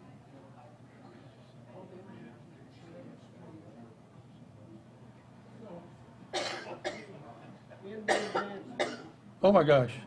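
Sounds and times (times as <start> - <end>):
person coughing: 6.4 - 7.1, 8.1 - 9.1.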